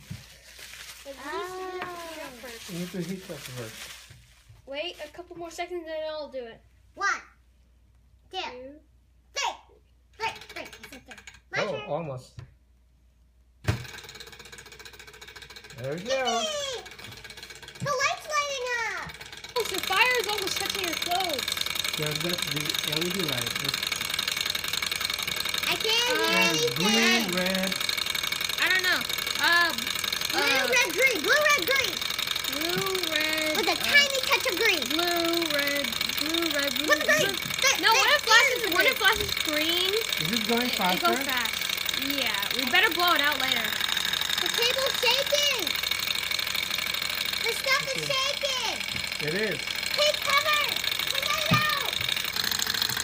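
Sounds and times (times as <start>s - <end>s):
stirling engine mechanical clatter: 10.2s - 11.5s, 13.7s - 53.0s.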